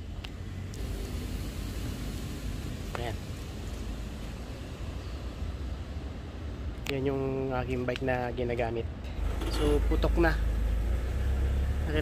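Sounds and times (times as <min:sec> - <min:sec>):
motor vehicle passing: 0:09.2 - 0:12.0.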